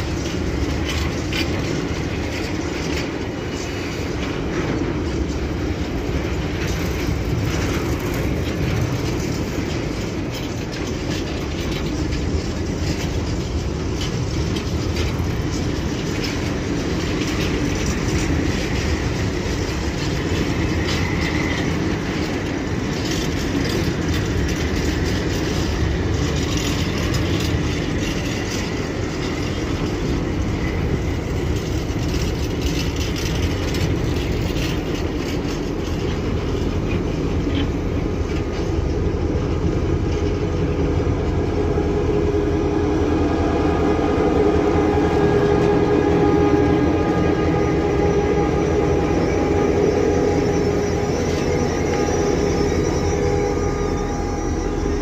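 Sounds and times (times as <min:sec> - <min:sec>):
clicking over rail joints: 0:00.0 - 0:55.0
train wheels rumbling on rail: 0:00.0 - 0:55.0
faint wheel squeal: 0:45.0 - 0:55.0.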